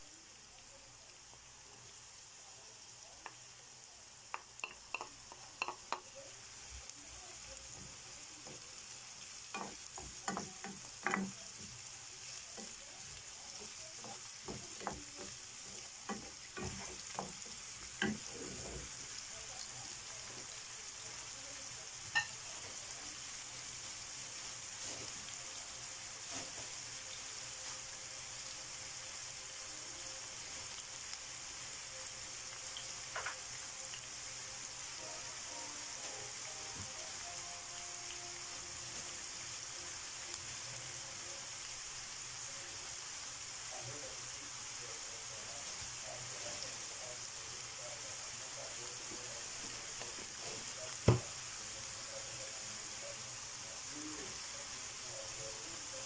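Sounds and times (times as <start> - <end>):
vegetables sizzling in frying pan: 0.0 - 56.0.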